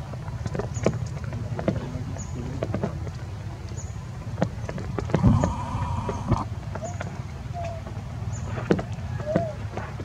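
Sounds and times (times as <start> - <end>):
low motor hum: 0.0 - 7.9.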